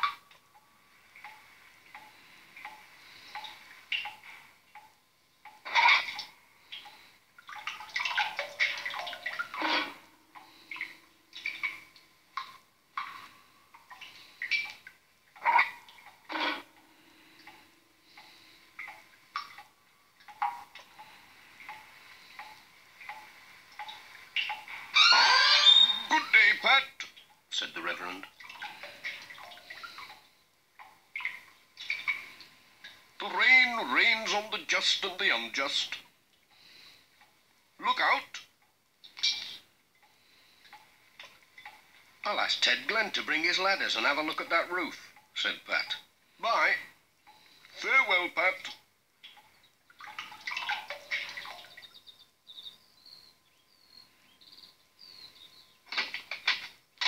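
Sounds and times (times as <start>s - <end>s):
water dripping into metal bucket: 0.0s - 25.2s, 25.8s - 52.8s, 55.6s - 57.0s.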